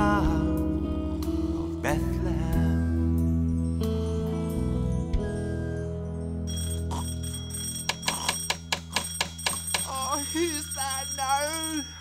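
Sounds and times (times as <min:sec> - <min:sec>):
bell ringing rapidly: 0:05.3 - 0:12.0.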